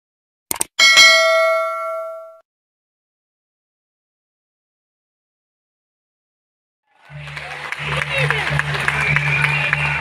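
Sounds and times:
bell-like notification ding: 0.8s - 2.4s.

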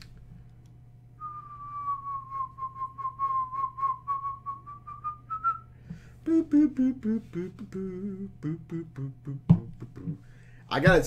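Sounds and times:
person whistling long note: 1.2s - 8.1s.

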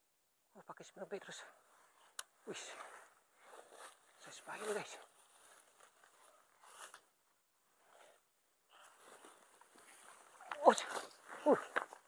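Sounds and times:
rustling of grass and leaves: 0.9s - 12.0s
person saying ouch: 10.4s - 11.8s.

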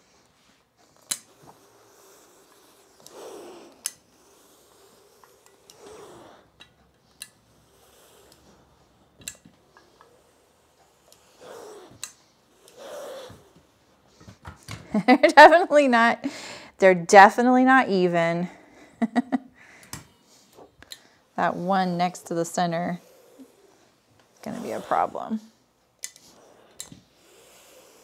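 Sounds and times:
iron sliding over fabric: 0.0s - 6.6s, 20.2s - 25.5s, 26.2s - 28.0s.

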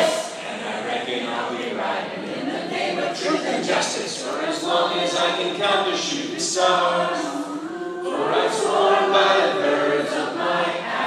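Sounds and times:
crowd singing together: 0.0s - 11.0s.

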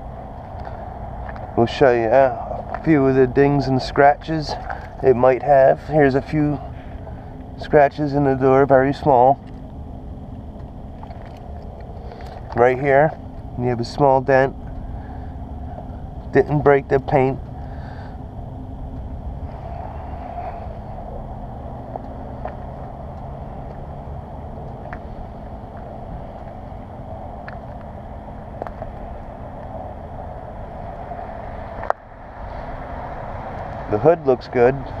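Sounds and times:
low rumble: 0.0s - 35.0s.

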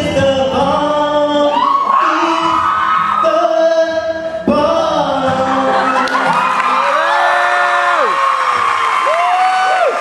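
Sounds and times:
man singing into a microphone: 0.0s - 6.6s
acoustic guitar: 0.0s - 9.1s.

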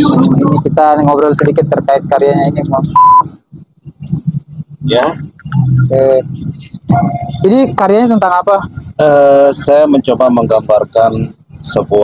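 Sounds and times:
short electronic beep: 3.0s - 3.3s, 6.9s - 7.5s.

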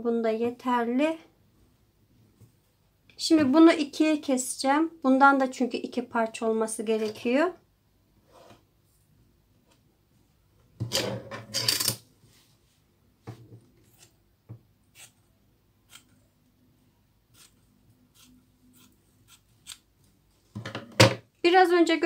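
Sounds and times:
faint rubbing on fabric: 12.2s - 13.0s.

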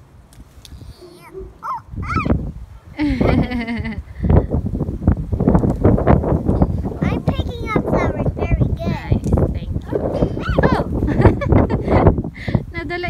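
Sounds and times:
wind buffeting microphone: 0.6s - 13.0s
child squealing: 1.0s - 2.4s, 10.4s - 10.9s
child wavering cry: 1.0s - 2.4s.

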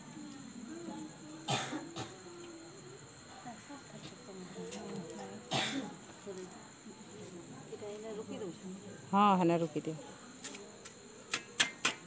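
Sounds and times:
people talking quietly: 0.0s - 12.0s.

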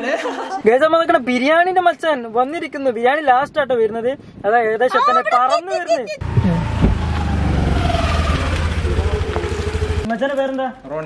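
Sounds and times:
faint falling whine: 6.2s - 10.1s
vehicle engine droning: 6.2s - 10.1s.

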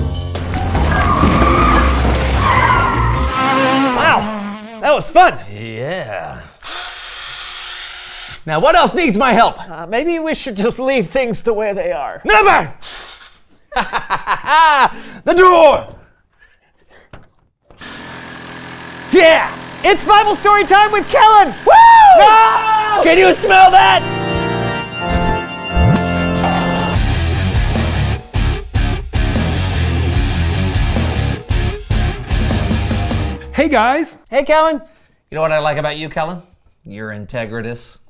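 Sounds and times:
tyres squealing: 0.7s - 4.6s
cordless drill whining: 6.6s - 8.4s, 17.8s - 23.0s.

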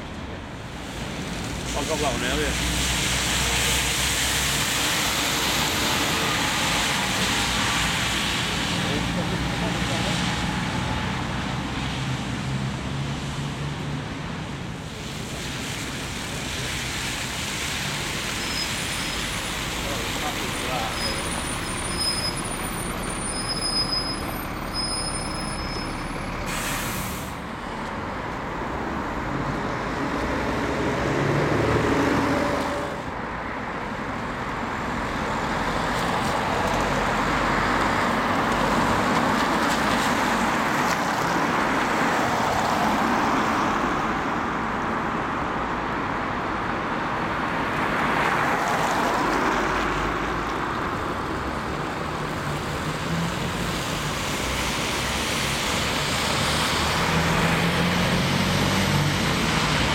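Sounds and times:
bus diesel engine: 0.0s - 47.8s, 48.8s - 59.9s
tyres hissing on wet road: 0.2s - 59.9s.

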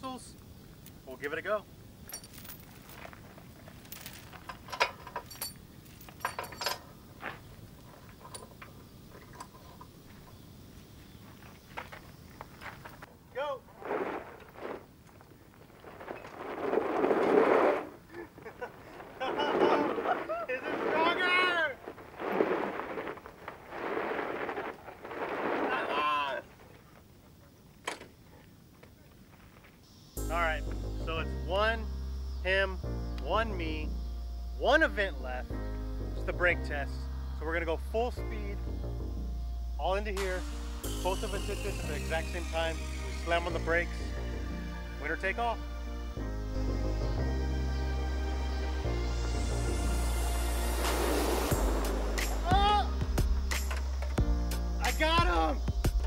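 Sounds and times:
chain clinking and knocking: 2.0s - 7.0s, 7.9s - 10.4s
tyres spinning on gravel: 2.2s - 27.2s
voices shouting: 19.2s - 21.9s, 25.6s - 26.6s, 52.2s - 53.1s.

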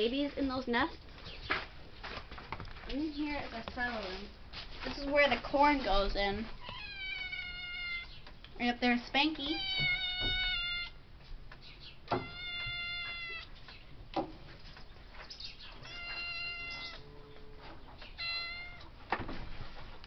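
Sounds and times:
cat meowing: 6.6s - 8.1s, 9.5s - 11.0s, 12.1s - 13.5s, 15.8s - 17.1s, 18.1s - 19.0s.

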